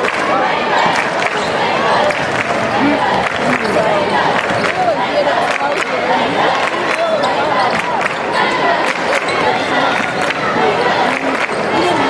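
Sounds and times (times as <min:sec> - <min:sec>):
arena crowd voices: 0:00.0 - 0:12.0.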